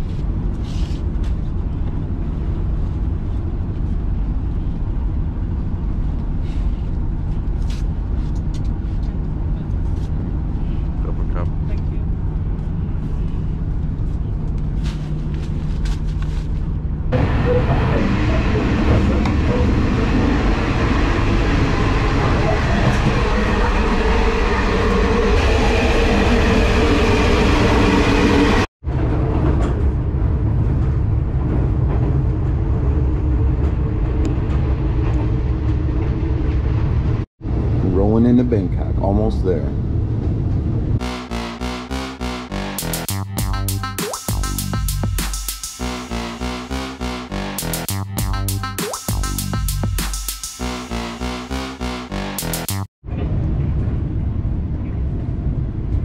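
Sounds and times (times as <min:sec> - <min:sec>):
train running rumble: 0:00.0 - 0:39.0, 0:39.6 - 0:56.0.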